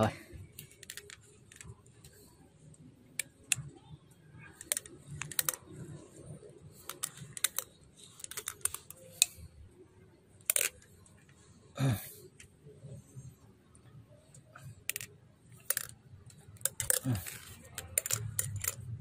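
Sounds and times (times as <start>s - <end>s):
plastic fitting clicking on threads: 0.6s - 2.2s, 4.6s - 5.7s, 6.8s - 9.3s, 14.9s - 18.8s.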